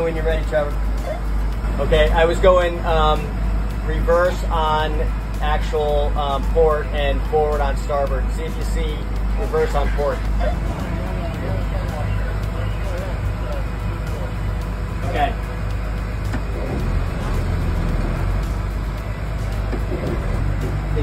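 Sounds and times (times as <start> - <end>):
faint voices: 0.0 - 17.6
diesel engines droning: 0.0 - 21.0.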